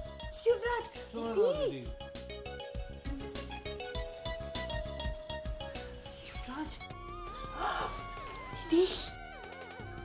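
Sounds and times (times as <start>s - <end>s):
music with gliding tones: 0.0s - 10.0s.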